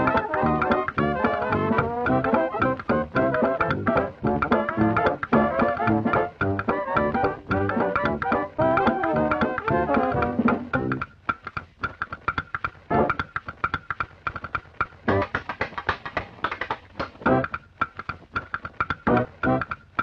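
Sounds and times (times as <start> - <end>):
band music with guitar and bass: 0.0 - 11.0, 12.9 - 13.2, 17.3 - 17.5, 19.1 - 19.7.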